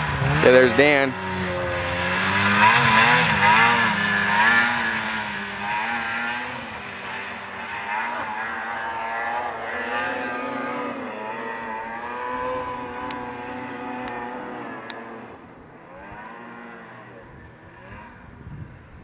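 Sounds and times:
snowmobile engine revving: 0.0s - 19.0s.

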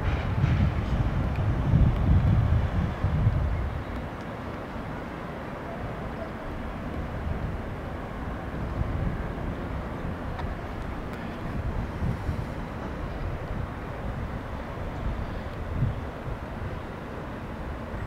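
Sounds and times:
wind buffeting microphone: 0.0s - 4.7s, 5.9s - 18.0s
distant traffic hum: 0.0s - 18.0s.

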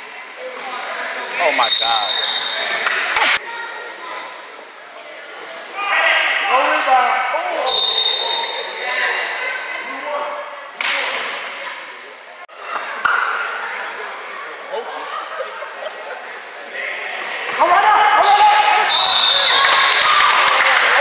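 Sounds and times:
players and spectators calling out: 0.0s - 21.0s.

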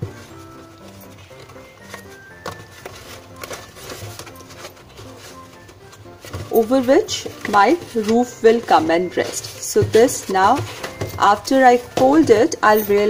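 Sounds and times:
cardboard being folded: 0.0s - 12.5s
quiet background music: 0.0s - 13.0s.

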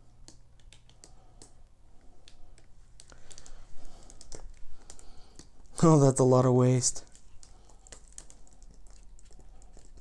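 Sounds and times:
paint dripping onto plastic: 0.2s - 5.8s, 7.0s - 10.0s.

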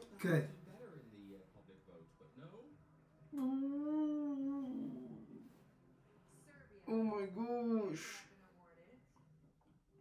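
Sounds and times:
person humming wordless ooh: 3.3s - 5.4s.

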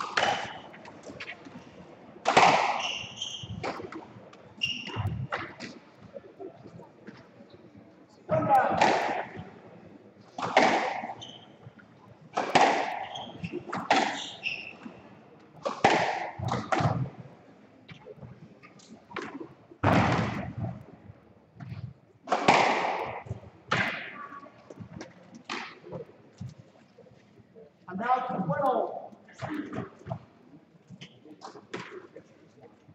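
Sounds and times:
squash ball hitting rackets and walls: 0.0s - 1.4s, 2.2s - 4.0s, 4.6s - 5.8s, 8.6s - 9.5s, 10.4s - 11.4s, 12.3s - 14.9s, 15.6s - 17.1s, 19.1s - 20.8s, 21.6s - 24.2s.

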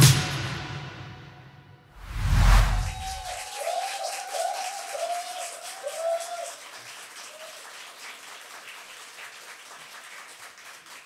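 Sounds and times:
short rising-and-falling tones: 2.0s - 3.3s
audience applauding: 2.6s - 11.0s.

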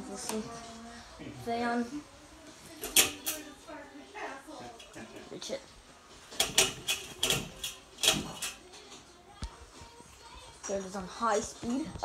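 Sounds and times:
low indistinct talking: 0.0s - 12.0s.

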